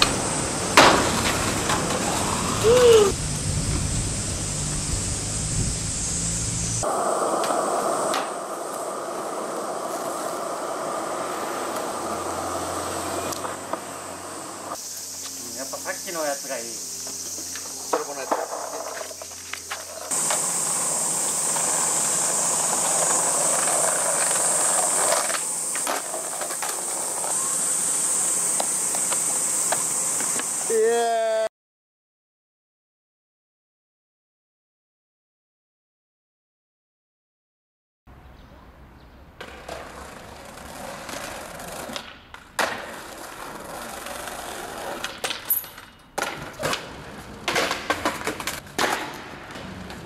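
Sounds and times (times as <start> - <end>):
skateboard wheels rolling on pavement: 0.0 - 31.4, 38.1 - 50.0.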